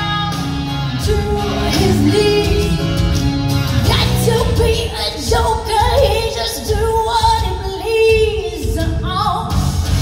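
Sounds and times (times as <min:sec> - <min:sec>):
woman singing with vibrato: 0:00.0 - 0:03.1, 0:03.8 - 0:09.7
band accompaniment: 0:00.0 - 0:10.0.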